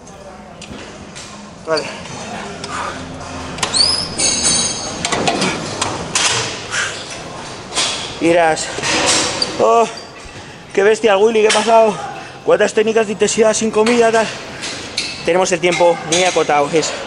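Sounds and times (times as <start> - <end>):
gym machines clanking: 0.8 - 17.0
high rising squeak: 3.6 - 5.1
man speaking: 10.7 - 14.5.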